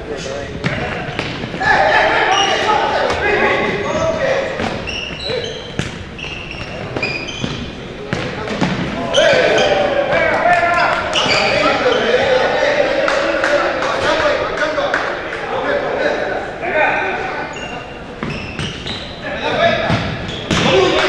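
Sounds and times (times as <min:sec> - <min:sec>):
shoes squeaking on gym floor: 0:00.2 - 0:10.0, 0:10.6 - 0:12.2, 0:17.3 - 0:21.0
players shouting: 0:00.3 - 0:05.8, 0:08.0 - 0:18.3, 0:19.0 - 0:21.0.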